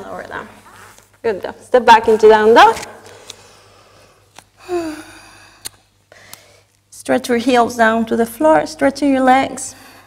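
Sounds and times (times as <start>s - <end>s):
woman sighing: 4.6s - 5.6s.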